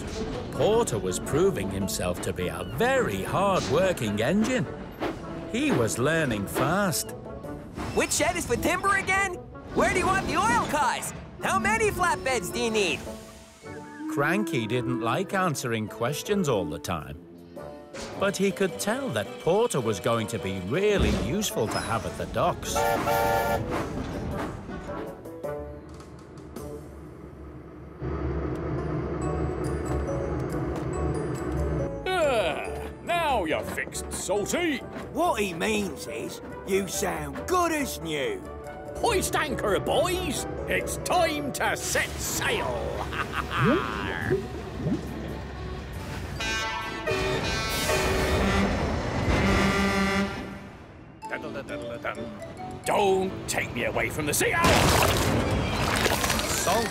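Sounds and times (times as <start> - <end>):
background music: 0.0 - 56.9
steam locomotive whistle: 22.7 - 23.7, 46.4 - 50.7
diesel locomotive engine rumbling: 26.2 - 32.0, 44.4 - 51.0.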